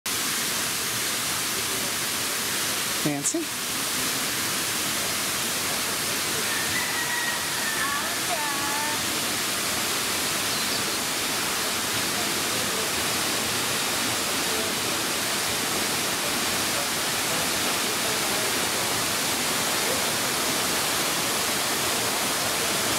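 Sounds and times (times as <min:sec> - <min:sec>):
waterfall rushing hiss: 0:00.1 - 0:22.9.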